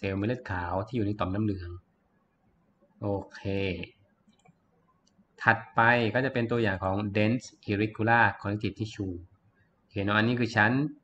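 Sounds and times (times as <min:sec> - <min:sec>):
man speaking: 0:00.0 - 0:01.9, 0:03.0 - 0:04.0, 0:05.4 - 0:09.3, 0:10.0 - 0:11.0
computer mouse clicks: 0:04.3 - 0:05.2.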